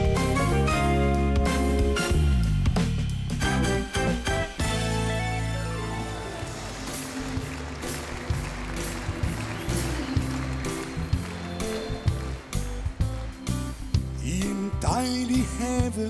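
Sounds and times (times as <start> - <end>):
band playing pop song: 0.0 - 16.0
bass line: 0.0 - 16.0.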